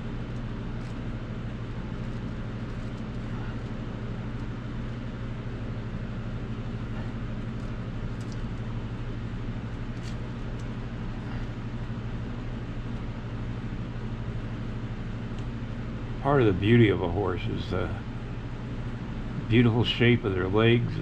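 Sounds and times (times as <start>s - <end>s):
machine humming: 0.0s - 21.0s.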